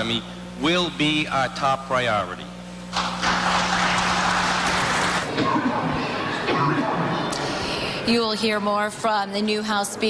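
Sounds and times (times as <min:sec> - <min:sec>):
people applauding: 0:03.0 - 0:05.3.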